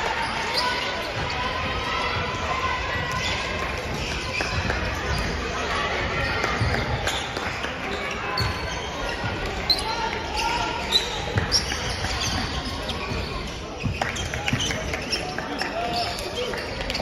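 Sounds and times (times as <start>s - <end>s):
shoes squeaking on court: 3.0s - 5.6s, 6.2s - 17.0s.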